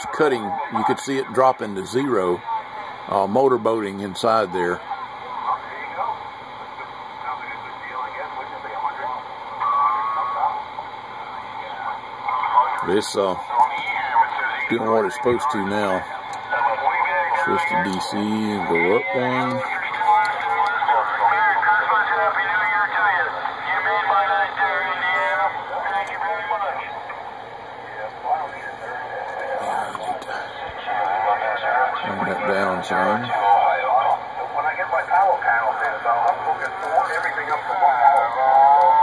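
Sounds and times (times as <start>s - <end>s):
voices over radio speaker: 0.0s - 39.0s.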